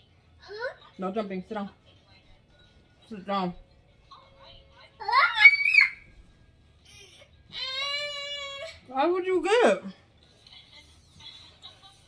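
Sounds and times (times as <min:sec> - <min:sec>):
toddler squealing: 0:05.1 - 0:06.0.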